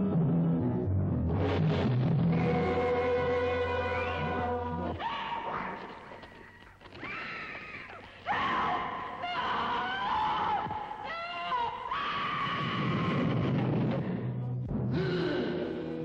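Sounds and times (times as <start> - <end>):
woman screaming: 7.0 - 13.3.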